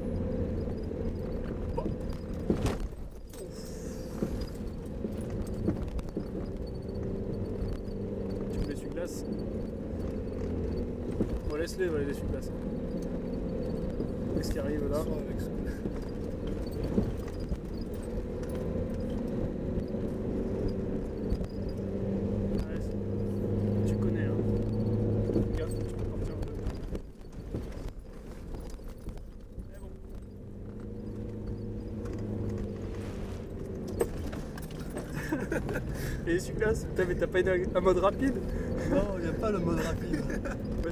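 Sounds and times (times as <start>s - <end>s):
diesel engine pulling under load: 0.0s - 40.9s
vehicle jolting knocks: 1.3s - 3.1s.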